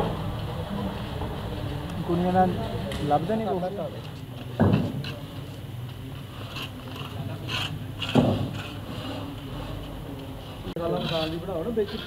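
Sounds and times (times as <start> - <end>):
hand scraping mortar on concrete: 6.2 - 9.8, 10.7 - 12.0.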